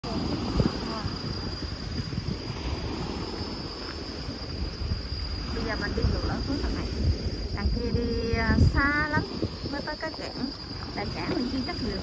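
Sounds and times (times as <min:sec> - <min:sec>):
insects droning: 0:00.0 - 0:12.0
wind rumble on microphone: 0:00.0 - 0:12.0.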